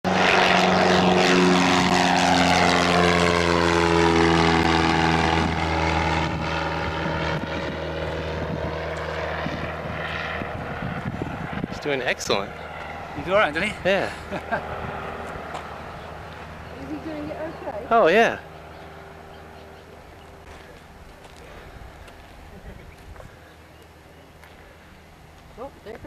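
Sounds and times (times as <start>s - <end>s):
propeller plane engine passing: 0.0s - 26.0s.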